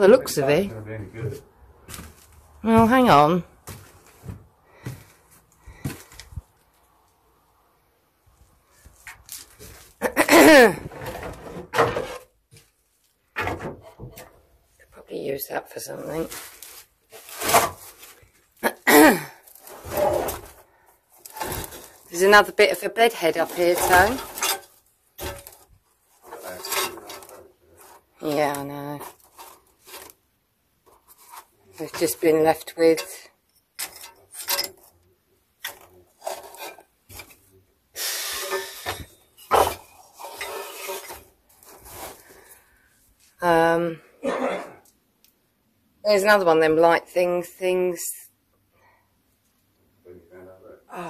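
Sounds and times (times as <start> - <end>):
objects scraping and clattering: 8.7 - 14.4, 16.0 - 18.6, 19.5 - 30.2, 30.8 - 35.0, 35.6 - 42.8.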